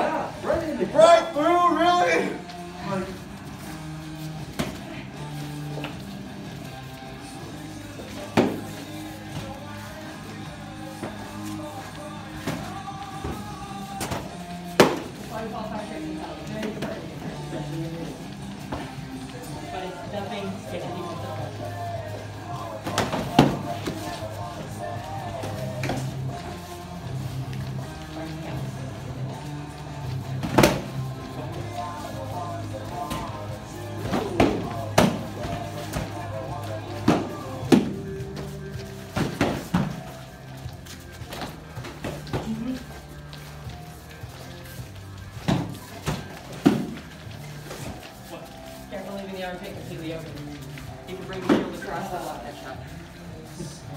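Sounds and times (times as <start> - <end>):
background music with low beat: 0.0 - 53.9
practice swords striking shields: 12.4 - 15.2, 22.8 - 24.0, 30.4 - 31.0, 34.0 - 36.2, 37.0 - 38.1, 39.1 - 40.1, 45.4 - 47.1.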